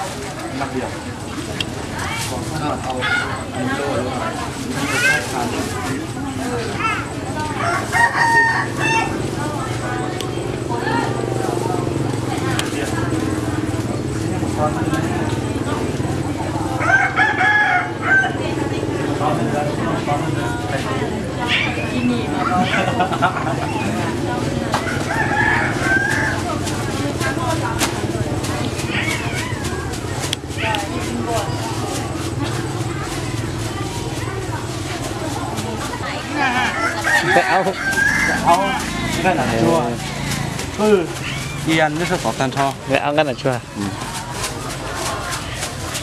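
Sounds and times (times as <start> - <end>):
crowd chatter: 0.0 - 46.0
people talking: 0.0 - 46.0
rooster crowing: 7.4 - 9.2, 16.8 - 18.6, 24.8 - 26.6, 36.3 - 39.8.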